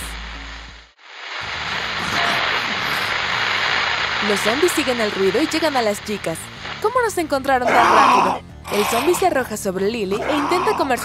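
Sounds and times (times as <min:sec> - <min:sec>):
loud rushing static noise: 0:00.0 - 0:09.1.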